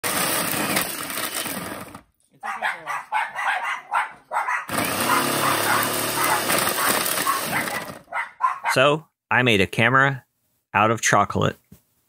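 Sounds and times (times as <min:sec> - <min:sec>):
food processor chopping: 0:00.0 - 0:02.1, 0:04.7 - 0:08.1.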